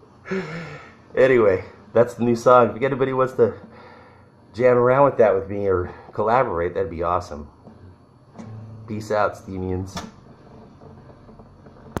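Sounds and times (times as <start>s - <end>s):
sharp click: 9.9s - 10.2s.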